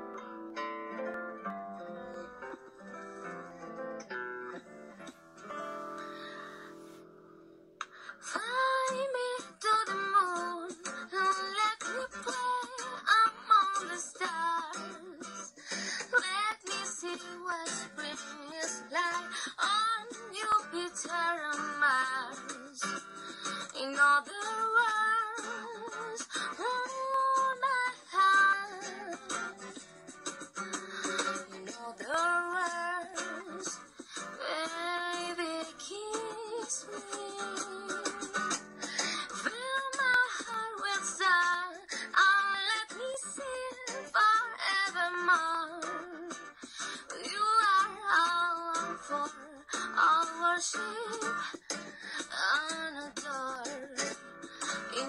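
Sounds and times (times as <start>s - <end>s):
acoustic guitar: 0.0s - 55.0s
woman singing: 8.1s - 29.7s, 31.0s - 55.0s.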